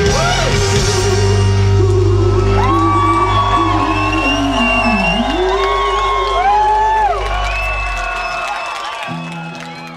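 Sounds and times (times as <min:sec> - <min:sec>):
live rock band playing: 0:00.0 - 0:07.8
crowd whooping: 0:02.0 - 0:09.9.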